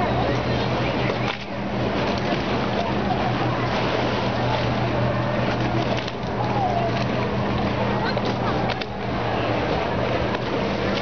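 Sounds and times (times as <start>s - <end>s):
boat engine droning: 0.0s - 11.0s
choppy water lapping: 0.0s - 11.0s
wind: 0.0s - 11.0s.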